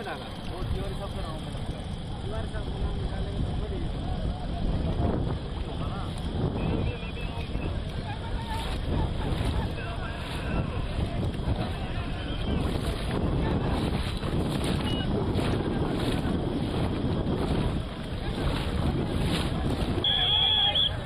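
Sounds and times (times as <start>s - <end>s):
water noise: 0.0s - 21.0s
wind buffeting microphone: 0.0s - 21.0s.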